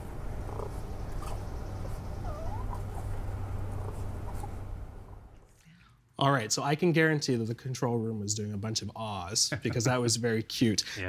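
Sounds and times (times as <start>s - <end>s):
steady low hum: 0.0s - 6.2s
raccoon kits chirping: 0.3s - 4.6s
raccoon wavering cry: 2.2s - 3.1s.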